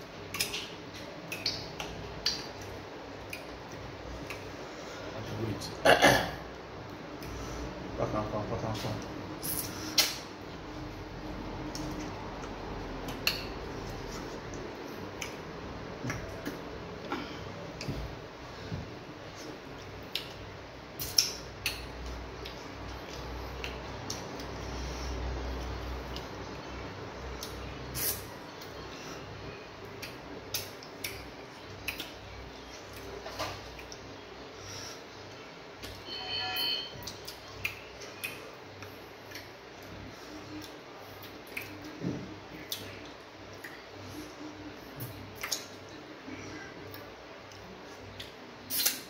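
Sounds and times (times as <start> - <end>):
wet mouth clicks while eating: 0.3 - 3.6, 9.4 - 10.3, 11.6 - 13.6, 14.5 - 16.6, 20.0 - 20.4, 21.0 - 24.6, 30.0 - 32.2, 37.0 - 38.5, 40.5 - 42.0, 42.6 - 43.8, 45.0 - 45.9, 46.9 - 49.0.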